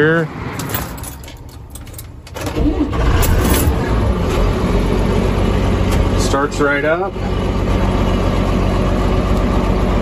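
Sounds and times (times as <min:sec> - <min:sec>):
tractor diesel engine starting: 0:02.2 - 0:10.0.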